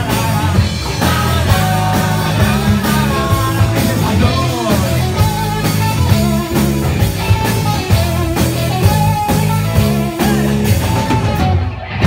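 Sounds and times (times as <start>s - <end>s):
bass guitar: 0.0s - 12.0s
drum kit beat: 0.0s - 12.0s
electric guitar: 0.0s - 12.0s.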